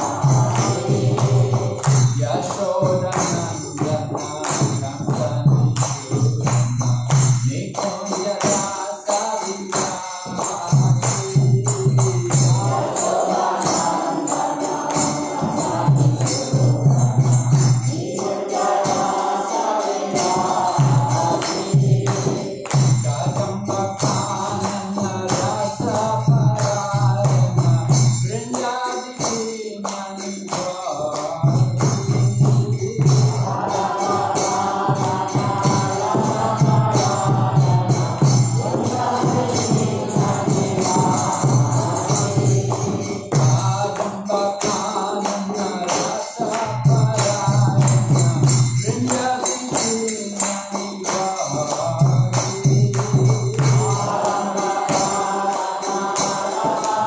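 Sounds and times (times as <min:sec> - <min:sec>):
metallic jingling percussion: 0:00.0 - 0:57.0
voices singing devotional chant: 0:00.0 - 0:57.0.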